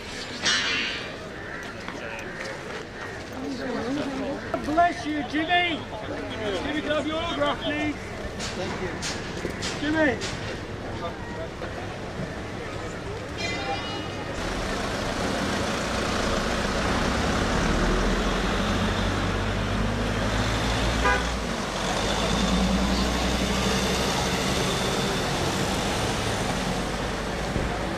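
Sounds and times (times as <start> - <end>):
vehicles driving past: 14.1 - 27.9.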